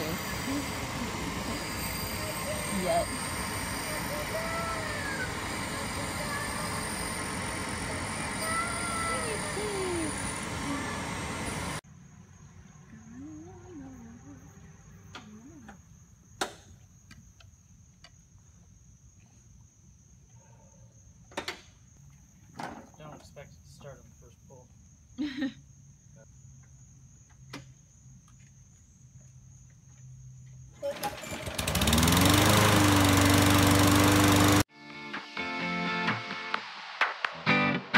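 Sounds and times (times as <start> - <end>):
insects buzzing: 0.0 - 32.7
key cutting machine grinding: 30.8 - 34.7.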